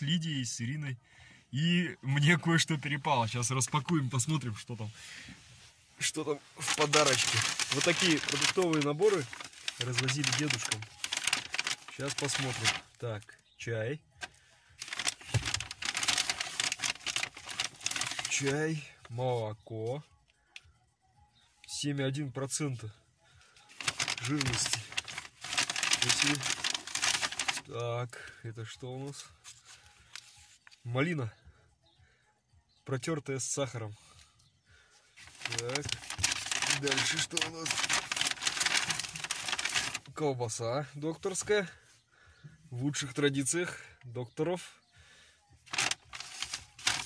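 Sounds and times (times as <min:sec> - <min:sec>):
paper bag rustling: 0:06.0 - 0:13.2, 0:14.3 - 0:18.9, 0:23.7 - 0:27.7, 0:35.2 - 0:40.2, 0:45.6 - 0:47.0.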